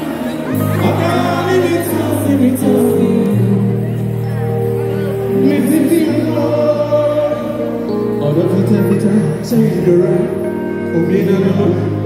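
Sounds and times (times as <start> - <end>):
live band music with group singing: 0.0 - 12.0.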